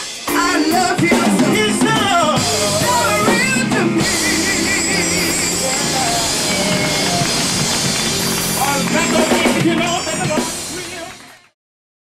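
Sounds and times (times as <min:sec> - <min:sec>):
drum kit: 0:00.0 - 0:11.6
voices singing: 0:00.3 - 0:10.0
keyboard sustained chords: 0:00.3 - 0:11.1.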